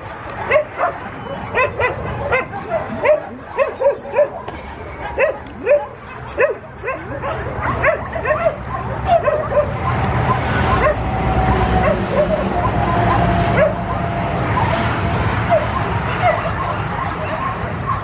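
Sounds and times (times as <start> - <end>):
dogs whining and yipping: 0.3 - 18.0.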